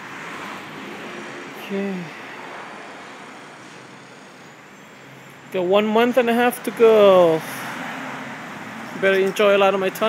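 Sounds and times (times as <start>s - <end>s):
distant road traffic: 0.0s - 10.0s.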